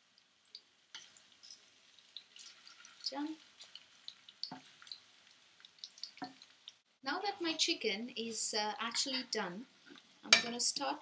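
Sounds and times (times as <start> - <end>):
small crackles and pops: 0.0 - 6.9
chicken shallow-frying in oil: 0.0 - 11.0.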